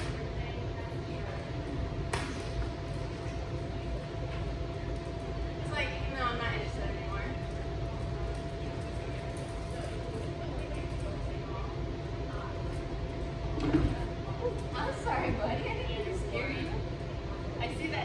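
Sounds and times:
room hum: 0.0s - 18.0s.

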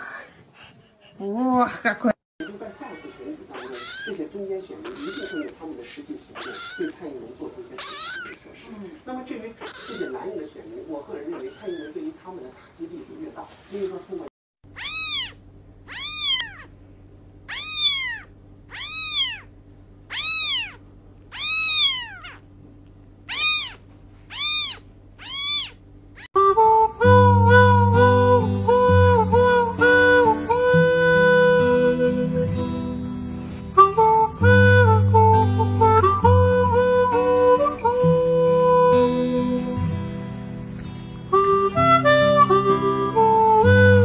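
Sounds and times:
steady low hum: 2.5s - 26.3s
kittens meowing: 3.4s - 10.4s, 11.2s - 12.1s, 14.7s - 16.8s, 17.5s - 19.5s, 20.1s - 22.5s, 23.3s - 26.3s
music: 26.4s - 44.0s.

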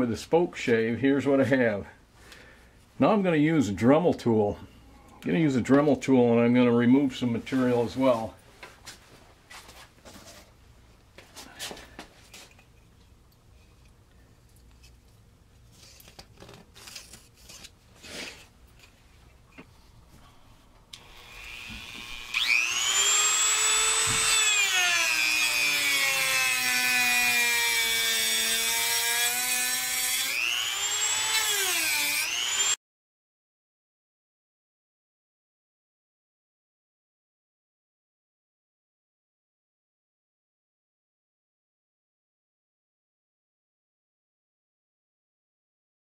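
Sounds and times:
rotary tool grinding wood: 21.0s - 32.8s.

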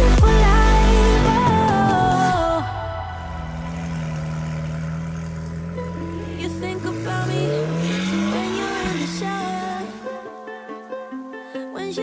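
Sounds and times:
music: 0.0s - 3.5s, 5.7s - 12.0s
car engine accelerating: 0.0s - 11.7s.

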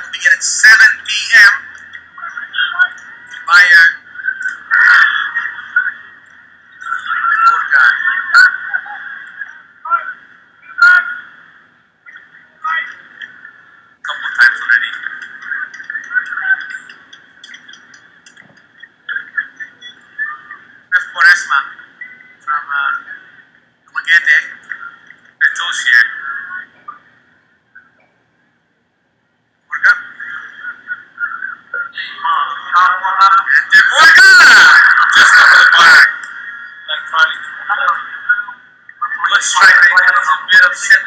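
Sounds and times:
muffled broadcast commentator voice: 0.0s - 11.4s, 12.1s - 27.1s, 29.7s - 41.0s.

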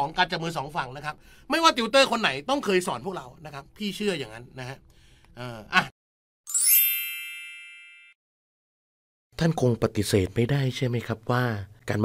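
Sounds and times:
bright chime ding: 6.5s - 8.2s.

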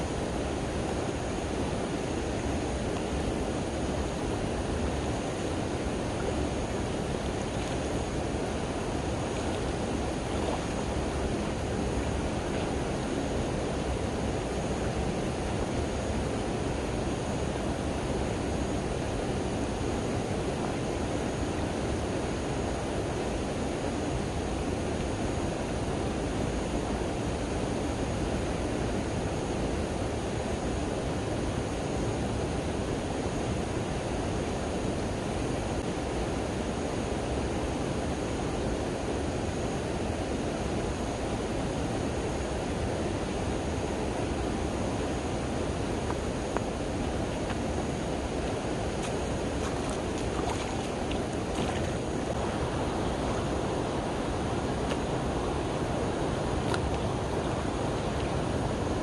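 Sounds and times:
stream flowing over stones: 46.1s - 59.0s.

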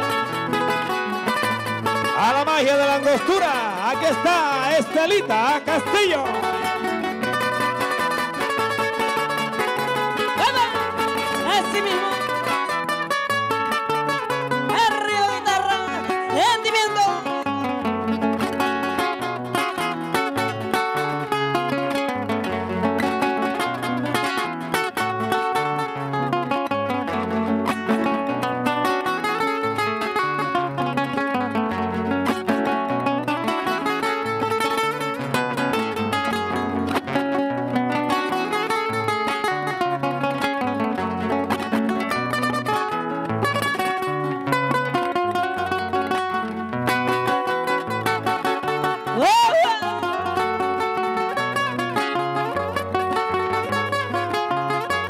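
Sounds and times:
acoustic guitars playing: 0.0s - 55.0s
loud cry with sliding pitch: 49.1s - 50.2s.

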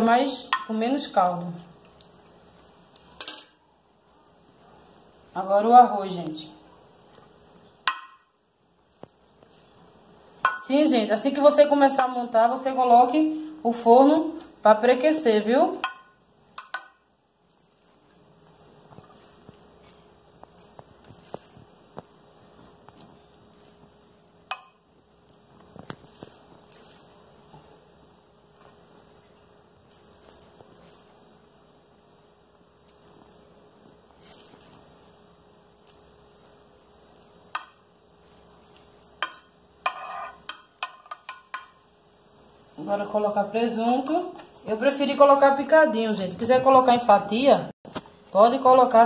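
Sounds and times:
faint steady hum: 0.0s - 49.0s
spoon scraping rice in dish: 35.8s - 41.9s.

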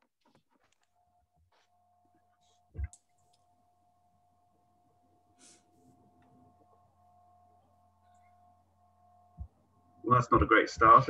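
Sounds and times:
faint steady hum: 0.2s - 11.0s.

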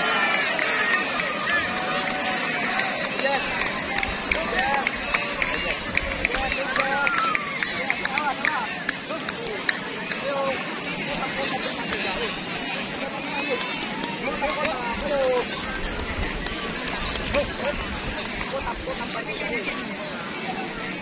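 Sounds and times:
crowd talking and shouting: 0.0s - 21.0s.

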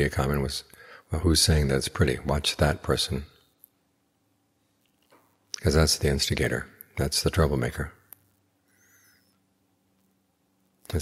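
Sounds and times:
faint high bird chirp: 8.7s - 9.5s.

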